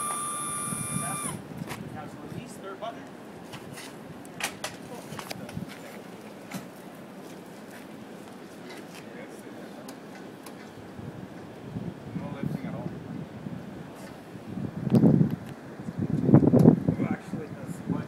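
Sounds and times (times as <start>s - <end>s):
hydraulic motor whining: 0.0s - 1.4s.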